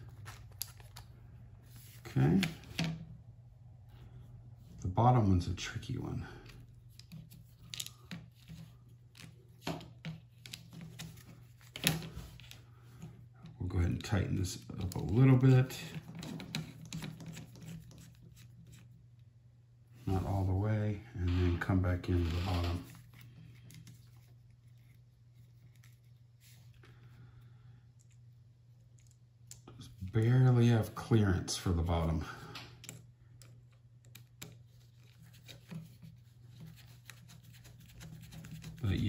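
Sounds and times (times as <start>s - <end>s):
low steady hum: 0.0s - 39.0s.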